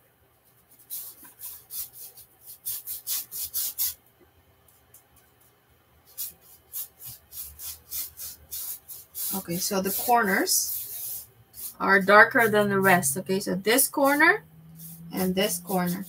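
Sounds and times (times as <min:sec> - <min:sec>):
paintbrush scrubbing on canvas: 0:06.1 - 0:13.0, 0:13.8 - 0:16.0.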